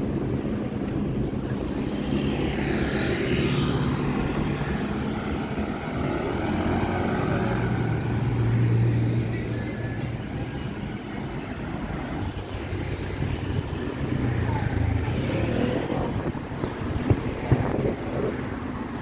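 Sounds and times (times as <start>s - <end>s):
car and motorbike engines: 0.0s - 19.0s
vehicle passing close: 1.8s - 9.4s, 12.1s - 19.0s.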